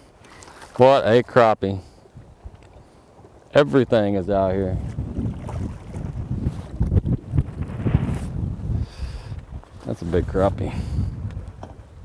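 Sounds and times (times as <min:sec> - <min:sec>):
wind buffeting microphone: 0:03.6 - 0:12.0.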